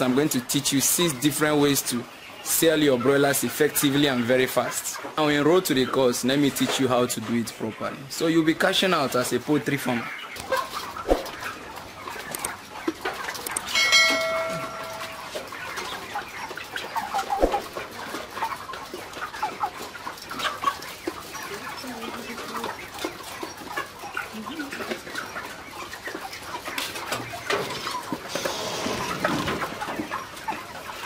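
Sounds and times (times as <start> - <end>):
flock of chickens clucking: 0.0 - 31.0.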